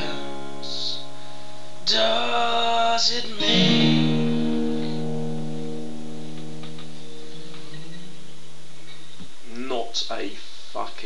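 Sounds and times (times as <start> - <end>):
acoustic guitar strummed: 0.0 - 9.2.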